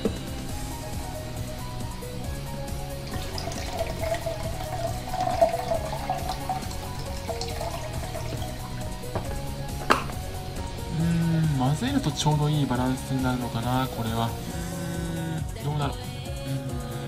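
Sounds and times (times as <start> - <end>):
background music: 0.0 - 17.0
water pouring into a steel mug: 2.0 - 10.4
sharp knock: 9.2 - 10.2.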